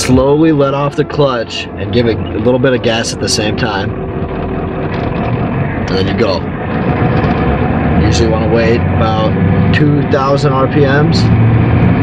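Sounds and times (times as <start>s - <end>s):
diesel truck engine running: 0.0s - 12.0s
road noise: 0.0s - 12.0s.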